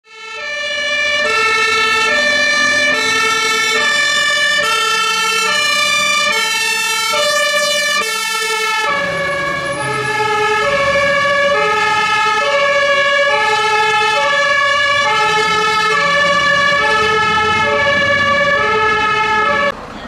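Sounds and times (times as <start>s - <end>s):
two-tone fire engine horn: 0.0s - 19.8s
engine rumble: 0.5s - 20.0s.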